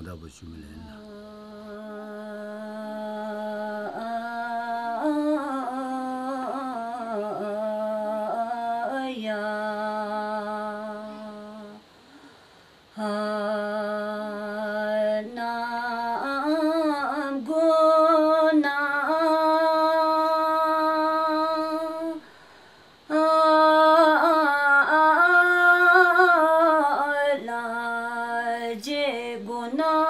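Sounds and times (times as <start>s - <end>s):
woman singing unaccompanied: 0.8s - 12.0s, 12.8s - 22.3s, 22.9s - 30.0s.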